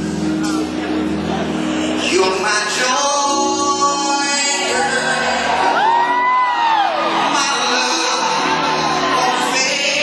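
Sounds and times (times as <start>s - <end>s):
crowd and hall noise: 0.0s - 10.0s
live band holding a chord: 0.0s - 10.0s
person singing: 1.4s - 10.0s.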